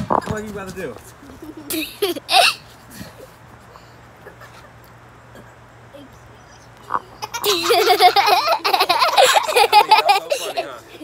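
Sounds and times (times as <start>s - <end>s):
children laughing loudly: 1.2s - 2.7s, 7.0s - 11.0s.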